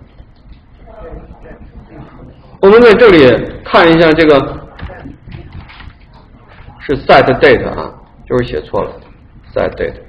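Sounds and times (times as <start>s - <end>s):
person speaking: 0.2s - 10.0s.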